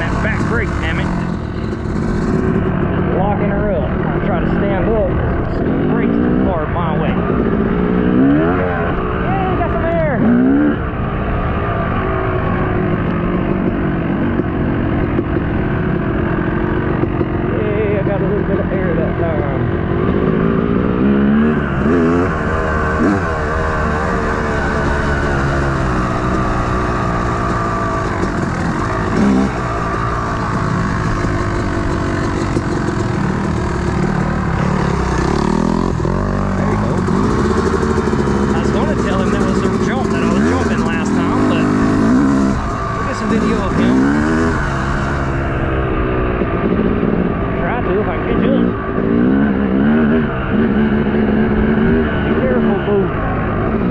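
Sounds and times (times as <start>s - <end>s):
dirt bike engine revving: 0.0s - 53.9s.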